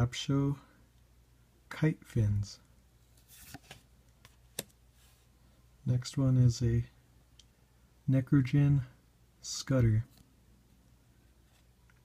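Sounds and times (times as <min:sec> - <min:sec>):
cards rustling: 0:03.1 - 0:04.8.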